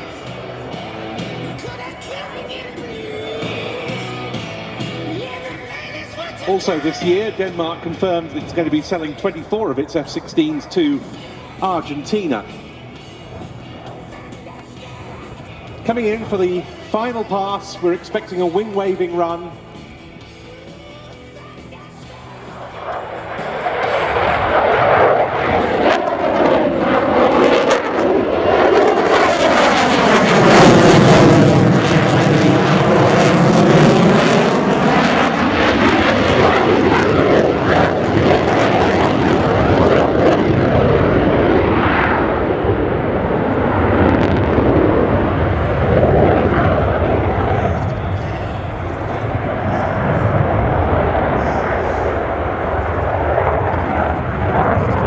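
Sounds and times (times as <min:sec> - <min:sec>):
fighter jet passing: 0:00.0 - 0:20.6, 0:21.5 - 0:55.0
jet afterburner rumble: 0:00.0 - 0:55.0.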